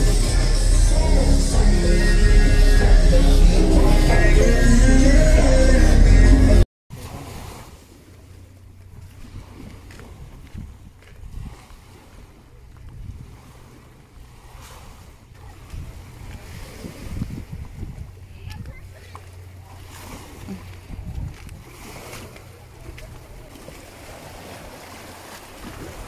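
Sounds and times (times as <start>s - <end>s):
waves washing onto pebbly shore: 6.9s - 8.1s, 9.0s - 26.0s
wind rumble on microphone: 8.7s - 24.7s.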